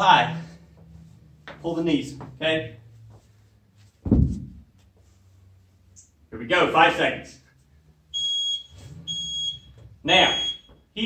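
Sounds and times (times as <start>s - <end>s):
short high timer beeps: 8.2s - 10.7s.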